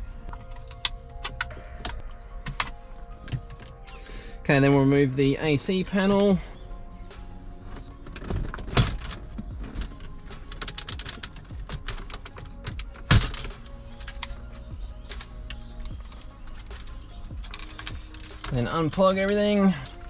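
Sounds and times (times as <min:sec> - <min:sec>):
background music with held notes: 0:00.0 - 0:20.0.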